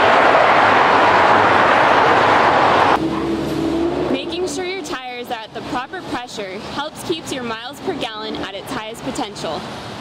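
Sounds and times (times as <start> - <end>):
passing cars rushing: 0.0 - 5.7
faint steady traffic hum: 0.0 - 10.0.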